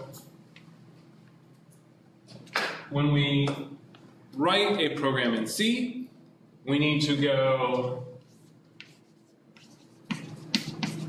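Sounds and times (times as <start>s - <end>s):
man speaking: 4.4s - 8.2s.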